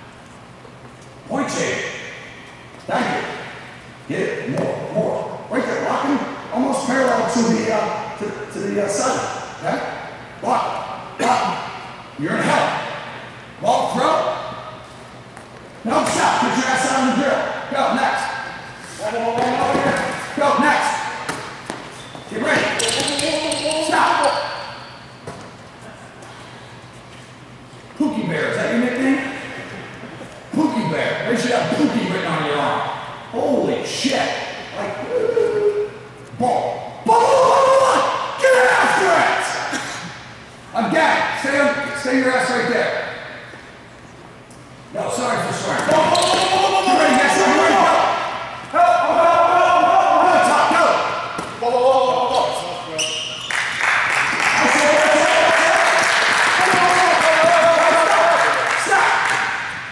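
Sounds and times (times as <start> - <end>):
steady low hum: 0.0 - 53.0
coach calling out: 45.0 - 53.1
men shouting: 45.9 - 51.1.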